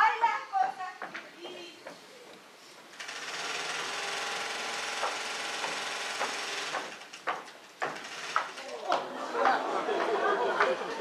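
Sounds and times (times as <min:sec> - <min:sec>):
footsteps on wooden stage: 0:00.9 - 0:02.9, 0:05.0 - 0:10.8
sewing machine running: 0:03.0 - 0:07.2, 0:08.0 - 0:08.8.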